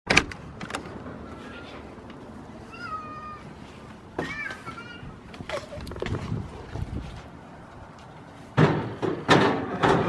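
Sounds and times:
cat meowing: 2.7s - 3.5s.

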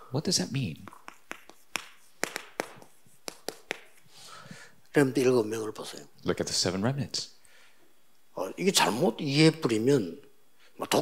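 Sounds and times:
chalk tapping on chalkboard: 0.8s - 4.0s.

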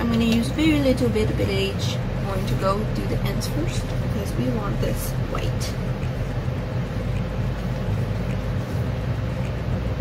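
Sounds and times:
electric fan humming: 0.0s - 10.0s
faint constant tone: 0.0s - 10.0s.

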